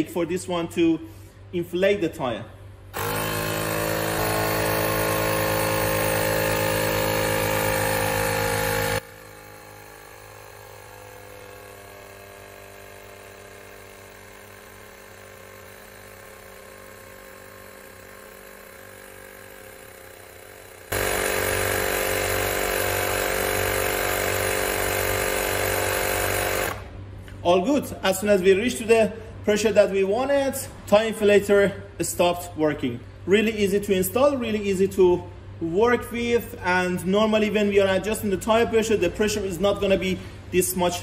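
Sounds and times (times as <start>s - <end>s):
tire inflator compressor running: 2.8s - 27.4s.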